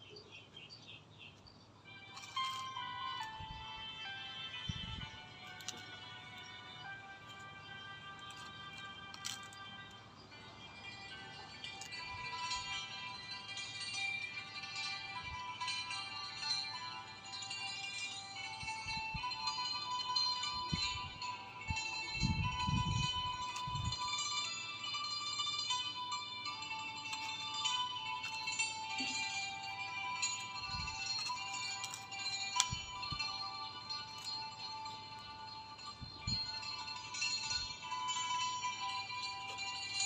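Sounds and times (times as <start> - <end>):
music of bright chiming tones: 0.0 - 40.0.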